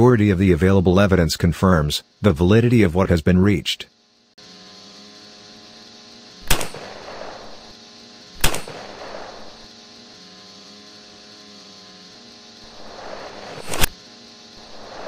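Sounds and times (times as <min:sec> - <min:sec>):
gunshots: 0:06.4 - 0:07.7, 0:08.4 - 0:09.6.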